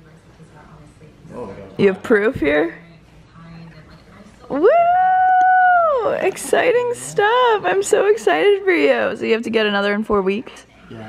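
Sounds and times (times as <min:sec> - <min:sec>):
woman cheering woo: 0:04.6 - 0:06.2.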